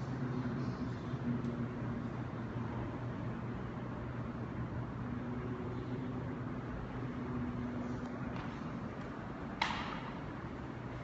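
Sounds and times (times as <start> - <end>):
mechanical room hum: 0.0 - 11.0.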